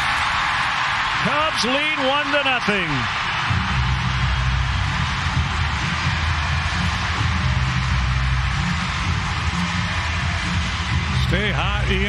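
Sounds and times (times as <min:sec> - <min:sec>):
stadium music with bass: 0:03.4 - 0:12.0.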